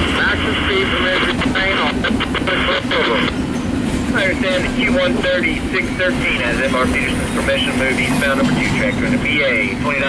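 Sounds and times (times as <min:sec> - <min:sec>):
radio static and garbled voice: 0:00.0 - 0:03.4, 0:04.1 - 0:10.0
train rumbling on rails: 0:00.0 - 0:10.0.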